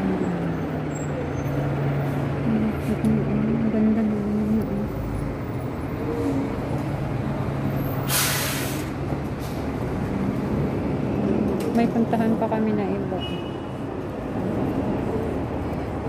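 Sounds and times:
street traffic engine hum: 0.0s - 16.0s.

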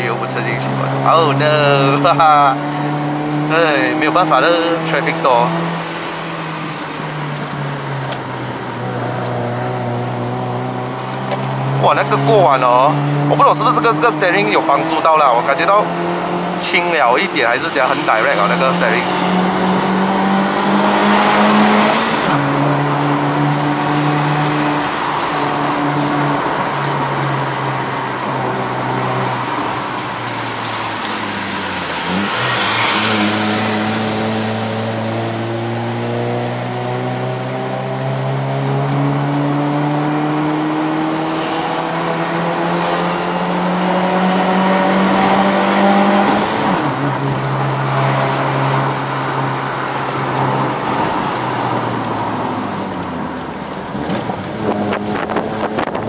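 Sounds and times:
car engine pulling hard uphill: 0.0s - 56.0s.

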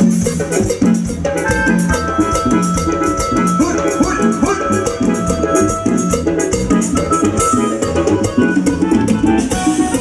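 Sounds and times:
band playing latin dance music: 0.0s - 10.0s
drums keeping steady beat: 0.0s - 10.0s.

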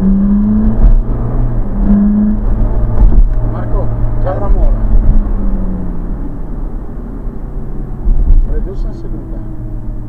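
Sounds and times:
car engine running: 0.0s - 10.0s
road noise: 0.0s - 10.0s.

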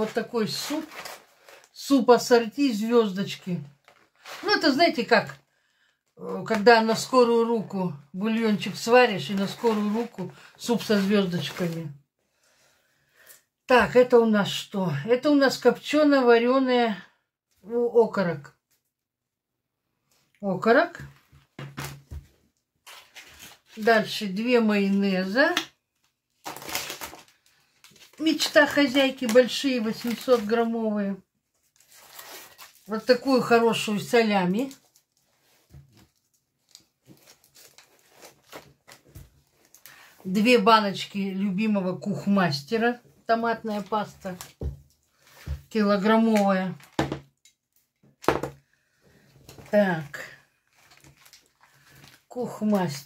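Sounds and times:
packaging rustling: 0.0s - 1.8s, 3.7s - 4.7s, 9.2s - 11.8s, 22.8s - 23.9s, 26.3s - 30.7s, 31.5s - 33.2s, 34.5s - 40.1s, 49.4s - 52.3s.

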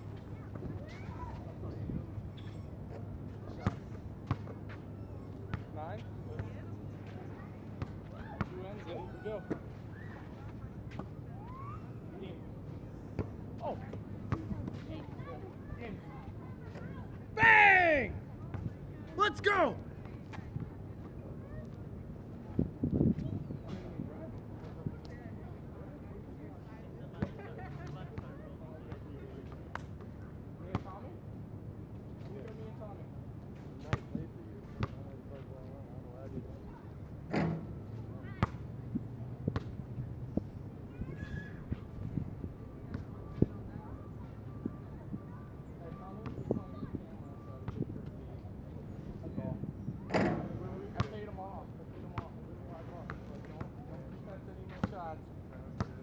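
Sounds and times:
faint players' voices: 0.0s - 56.0s
players' voices: 0.2s - 22.4s
basketball bouncing on asphalt: 3.6s - 4.5s.

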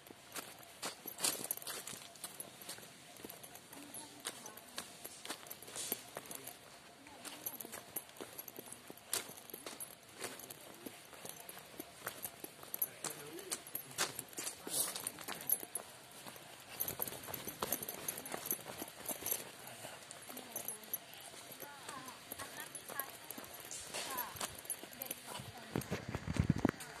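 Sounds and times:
footsteps on wood and gravel: 0.0s - 27.0s.

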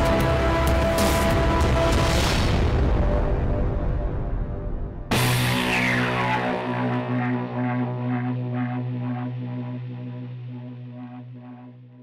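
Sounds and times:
low sustained drone music: 0.0s - 12.0s.

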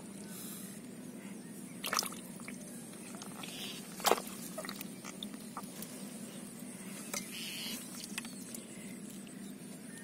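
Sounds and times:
muddy water splash: 1.8s - 5.7s.

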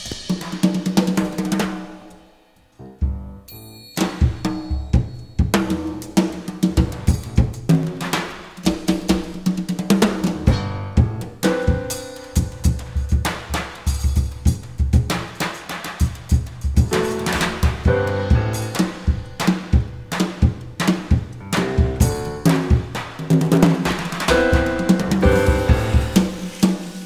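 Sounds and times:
jazz drum kit and percussion: 0.0s - 27.0s
piano chords: 2.8s - 6.2s, 10.4s - 13.4s, 16.8s - 23.1s, 23.7s - 27.0s.

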